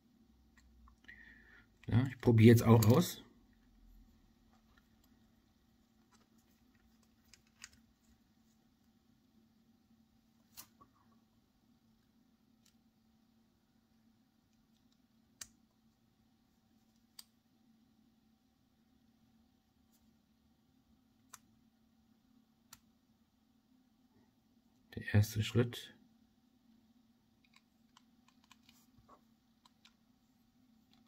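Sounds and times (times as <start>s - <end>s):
faint steady hum: 0.0s - 31.0s.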